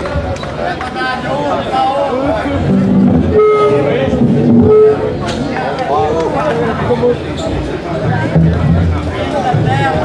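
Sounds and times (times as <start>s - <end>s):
distorted electric guitar: 2.6s - 5.2s.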